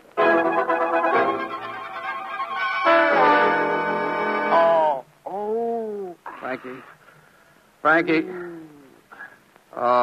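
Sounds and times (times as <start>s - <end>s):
loud brass chord: 0.2s - 4.7s
orchestra with strings: 0.2s - 4.8s.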